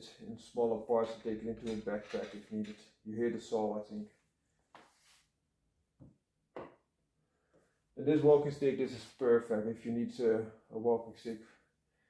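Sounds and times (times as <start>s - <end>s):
walking stick knocking on wood: 6.0s - 6.8s.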